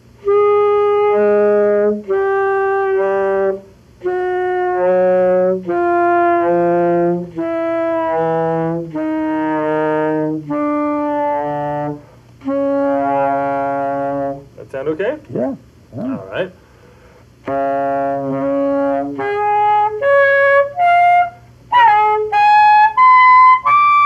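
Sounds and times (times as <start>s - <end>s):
alto saxophone held notes: 0.2s - 14.6s, 17.4s - 24.0s.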